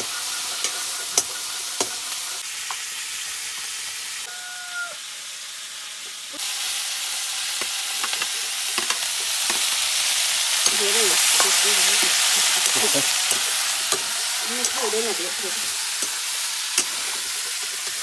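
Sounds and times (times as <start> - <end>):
chicken sizzling in a wok: 0.0 - 18.0
metal tongs clacking on pan: 10.6 - 15.2, 15.8 - 18.0.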